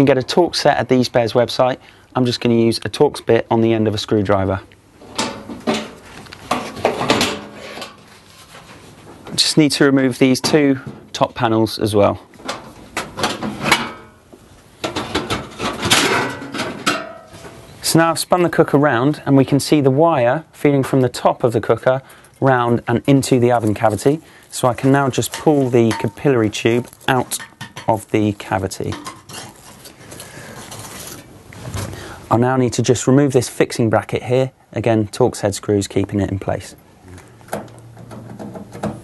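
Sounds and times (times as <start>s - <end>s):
sheet metal panels clattering: 5.0s - 8.1s, 12.4s - 14.2s, 14.8s - 17.6s
rustling and crinkling foil: 6.0s - 9.2s, 23.2s - 32.0s.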